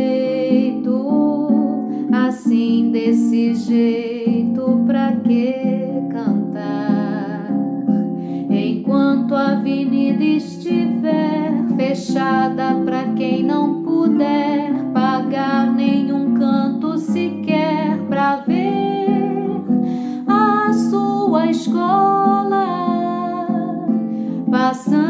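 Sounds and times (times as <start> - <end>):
plucked acoustic guitar: 0.0 - 25.0
woman singing with vibrato: 0.0 - 25.0.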